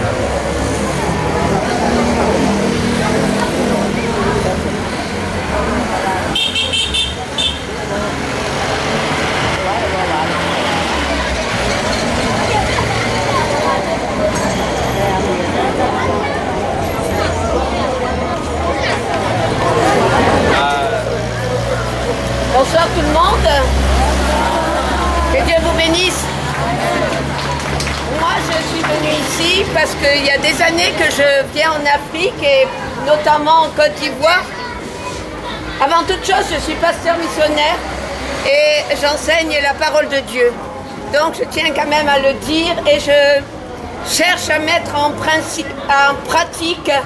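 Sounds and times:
vehicle engine rumble: 0.0 - 30.3
people talking: 0.0 - 47.0
roadside traffic: 0.0 - 47.0.

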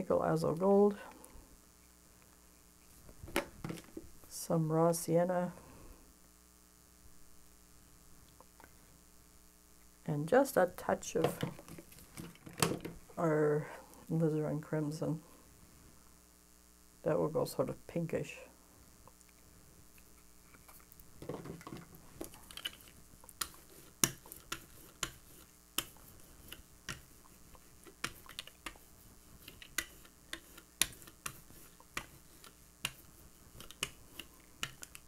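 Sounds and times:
rubber brayer rolling paint: 21.2 - 35.0.

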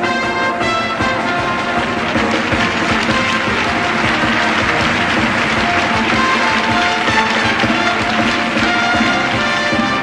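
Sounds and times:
circus band music: 0.0 - 10.0
audience applause: 1.0 - 10.0.

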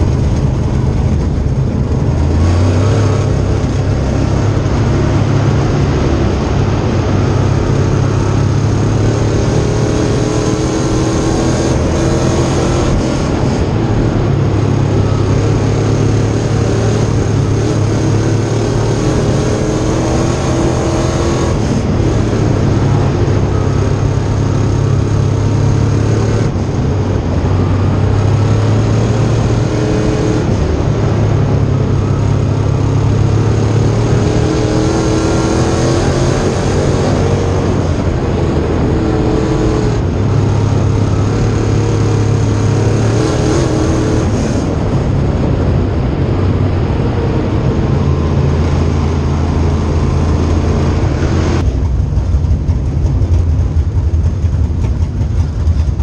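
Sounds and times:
race car engine: 0.0 - 56.0.

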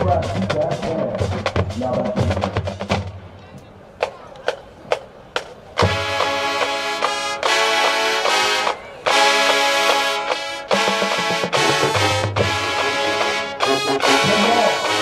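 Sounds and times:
marching band playing: 0.0 - 15.0
loud held brass chords: 5.8 - 15.0.

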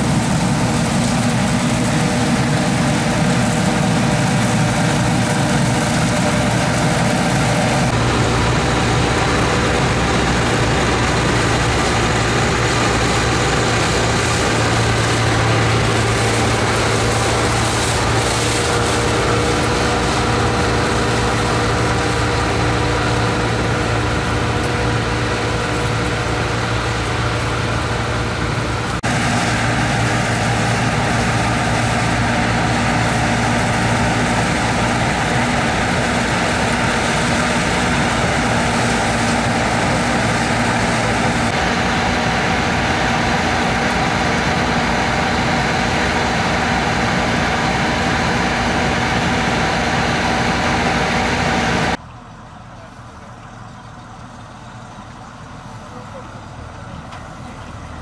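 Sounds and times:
combine harvester running: 0.0 - 58.0.

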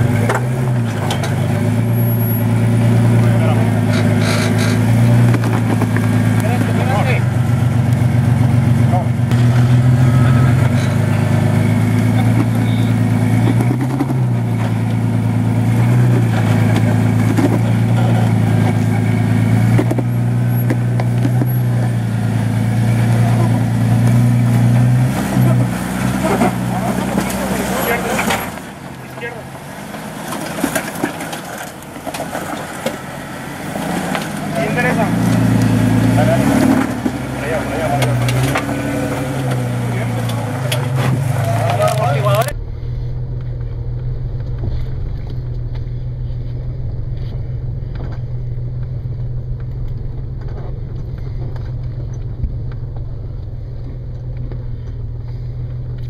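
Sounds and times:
engine working under load: 0.0 - 56.0.

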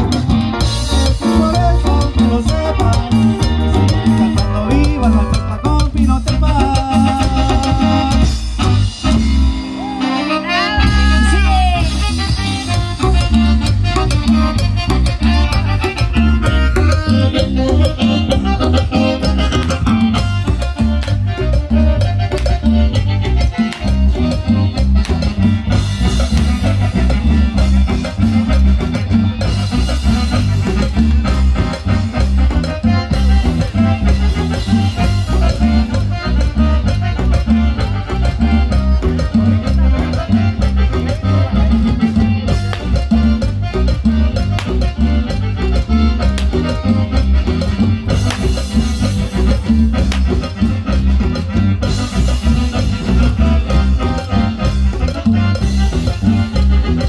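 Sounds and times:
live band playing through speakers: 0.0 - 57.0.

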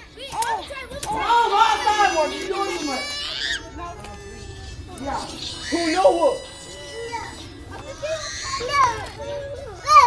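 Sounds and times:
children and adults calling out: 0.0 - 10.0
loud cry: 0.3 - 10.0.

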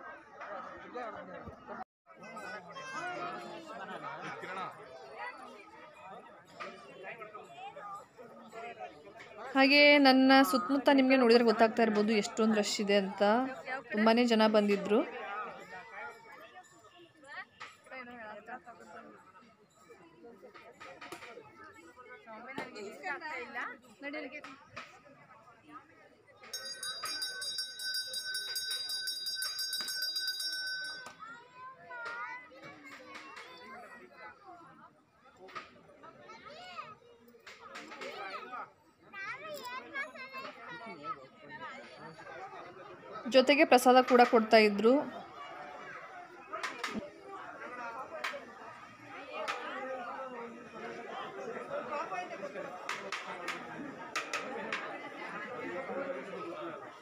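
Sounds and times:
crowd voices: 0.0 - 57.0
metal bell ringing rapidly: 26.5 - 31.1.

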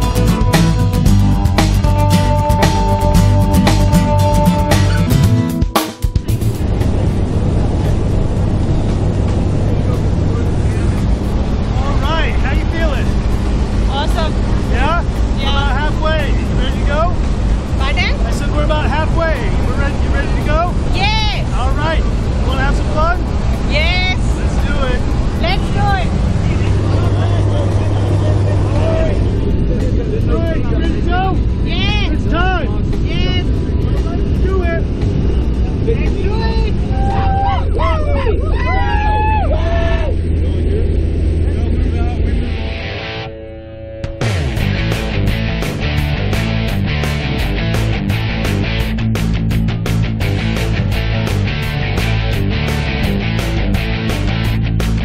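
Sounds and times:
small plane engine and propeller drone: 6.6 - 20.9
indistinct raised voices: 36.1 - 42.8.

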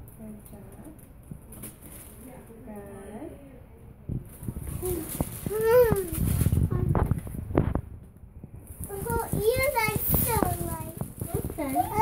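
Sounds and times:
child making high-pitched sounds: 4.8 - 6.2, 8.9 - 12.0.

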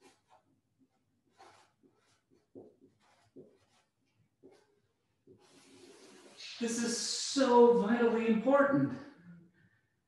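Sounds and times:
faint writing strokes: 0.0 - 6.7.

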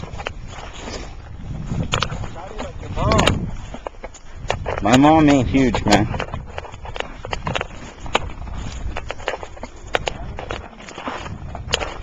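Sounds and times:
footsteps crunching in wet snow: 0.0 - 12.0.

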